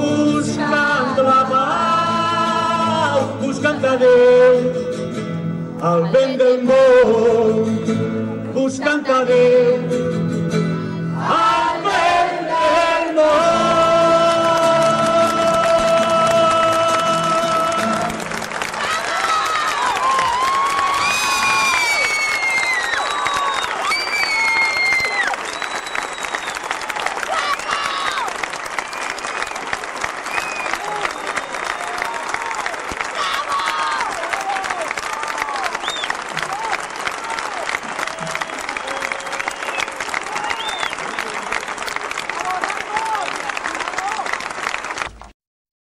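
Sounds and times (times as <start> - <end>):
audience applauding: 13.5 - 45.4
cheers and shouted calls: 15.6 - 41.7, 42.3 - 44.4.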